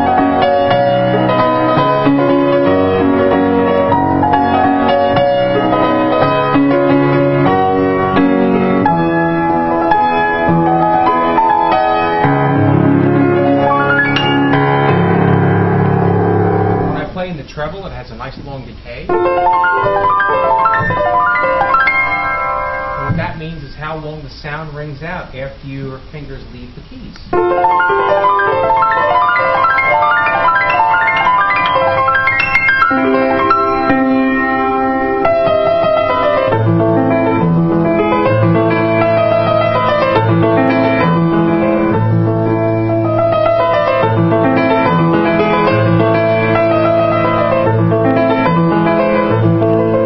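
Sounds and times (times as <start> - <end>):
piano chords: 0.0 - 24.9, 27.3 - 50.0.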